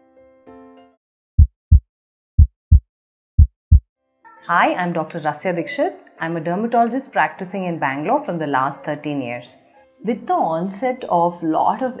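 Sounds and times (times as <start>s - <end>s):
heartbeat double thump: 1.4s - 1.8s, 2.4s - 2.8s, 3.4s - 3.8s.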